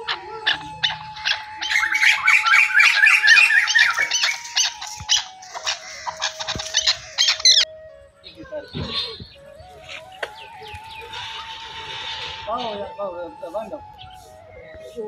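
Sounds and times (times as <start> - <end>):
background music held tone: 0.0 - 15.0
birds calling rapidly: 0.0 - 15.0.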